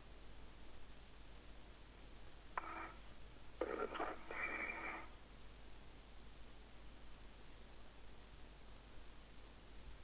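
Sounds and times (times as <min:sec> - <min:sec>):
radio static burst: 0:02.6 - 0:03.0, 0:03.6 - 0:05.2.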